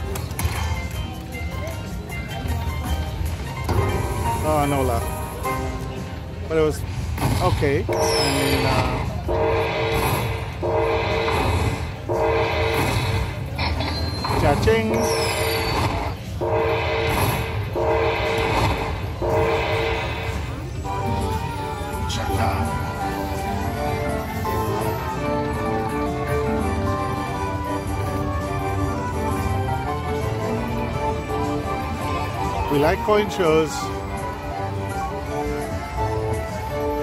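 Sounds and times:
casino background hum: 0.0s - 37.0s
crowd chatter: 0.0s - 37.0s
slot machine bonus music: 0.6s - 37.0s.

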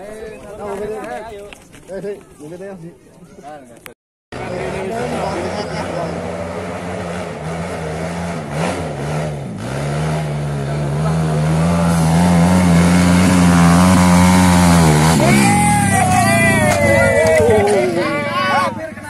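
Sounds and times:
dirt bike engine labouring: 4.4s - 19.0s.

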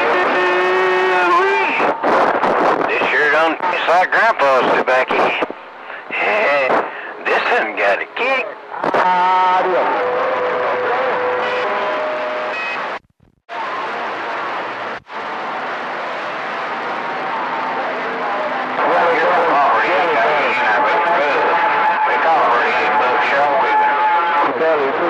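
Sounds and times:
radio static hiss: 0.0s - 11.6s, 18.7s - 25.0s.

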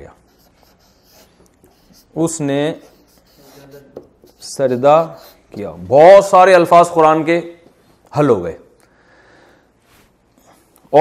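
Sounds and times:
marker pen writing on paper: 0.1s - 5.8s.

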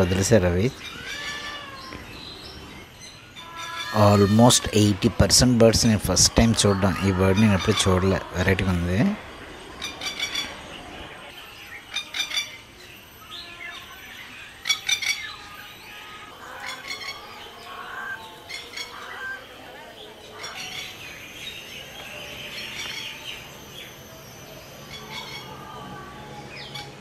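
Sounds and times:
birds chirping: 0.0s - 27.0s
high bird twittering: 0.0s - 27.0s.

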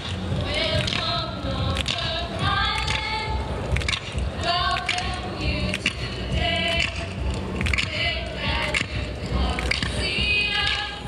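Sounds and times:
low musical accompaniment: 0.0s - 11.0s
group of girls singing: 0.3s - 11.0s.

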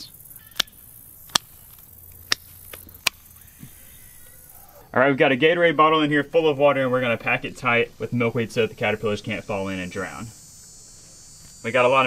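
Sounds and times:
pruners snipping stems: 0.4s - 3.8s.

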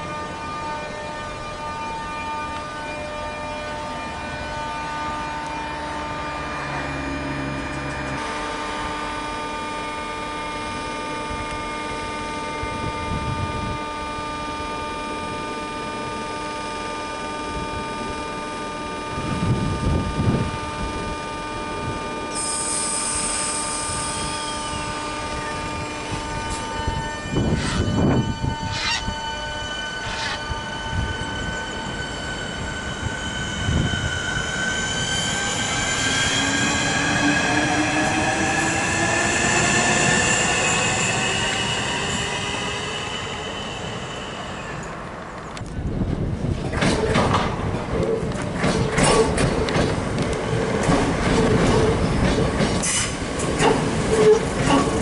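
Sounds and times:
electric train whine: 0.0s - 55.0s
rising electric whine: 23.1s - 45.7s.

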